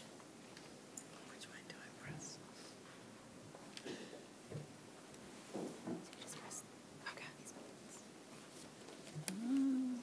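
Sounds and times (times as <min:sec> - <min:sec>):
faint whispering: 0:01.1 - 0:02.7, 0:06.2 - 0:08.1, 0:09.2 - 0:10.0.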